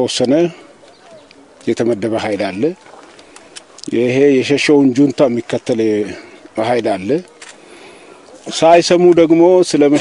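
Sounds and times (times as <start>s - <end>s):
man speaking: 0.0s - 0.8s, 1.6s - 2.9s, 3.8s - 7.4s, 8.4s - 10.0s
faint background noise: 0.0s - 10.0s.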